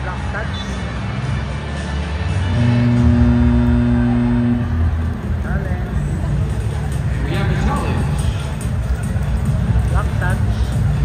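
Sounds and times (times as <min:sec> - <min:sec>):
arena horn low note: 0:02.5 - 0:05.4.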